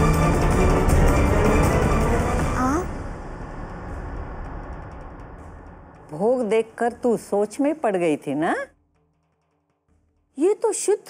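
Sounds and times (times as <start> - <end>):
low rumbling music drone: 0.0 - 7.9.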